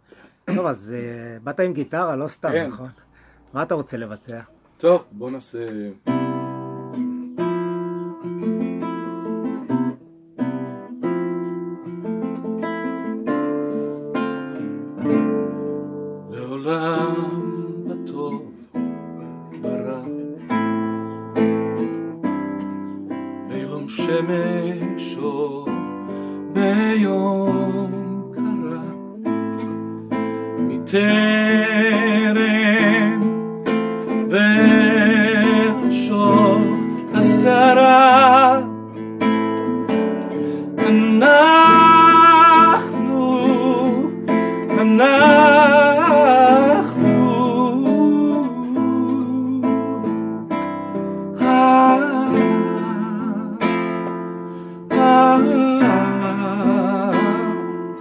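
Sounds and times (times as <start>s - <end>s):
classical guitar chords: 0.0s - 58.0s
man singing with vibrato: 16.3s - 18.8s, 23.5s - 29.6s, 30.6s - 39.0s, 40.3s - 58.0s.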